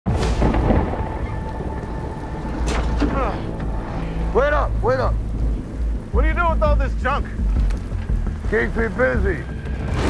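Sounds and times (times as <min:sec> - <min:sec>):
deep low rumble: 0:00.1 - 0:10.0
heavy rain falling: 0:00.1 - 0:10.0.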